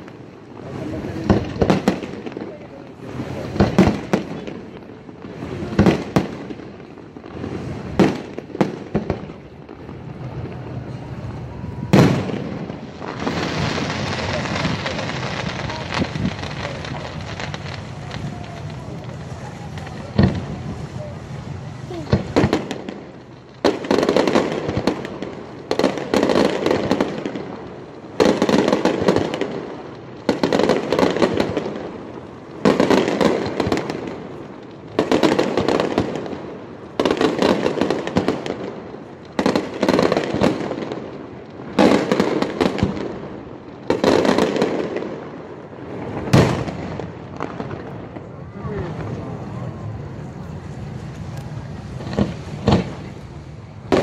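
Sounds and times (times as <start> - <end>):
continuous rumble: 0.0 - 43.9, 45.4 - 54.0.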